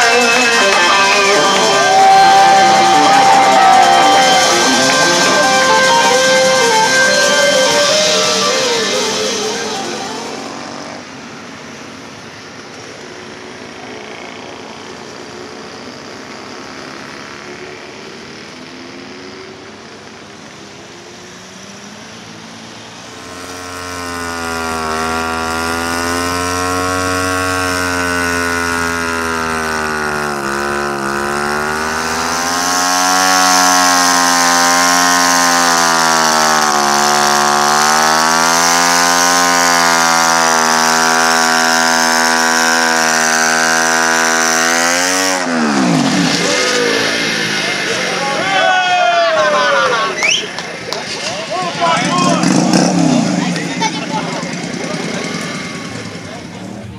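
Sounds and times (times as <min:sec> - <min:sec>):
motorcycle engine revving: 0:00.0 - 0:48.8, 0:50.6 - 0:56.9.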